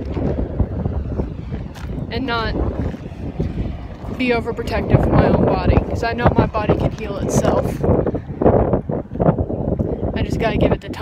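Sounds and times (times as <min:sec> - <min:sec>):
wind on phone microphone: 0:00.0 - 0:11.0.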